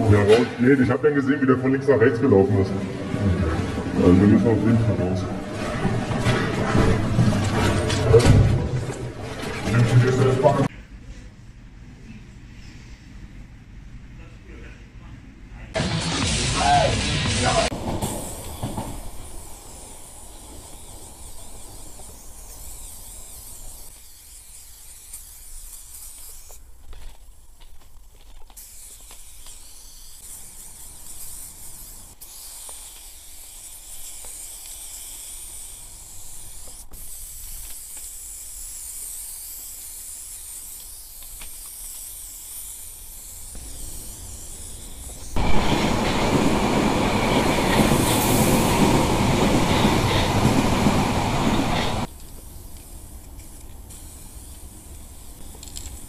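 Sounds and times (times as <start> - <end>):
spray paint can hissing: 15.8 - 56.0
train passing close by: 17.4 - 22.2, 45.4 - 52.1.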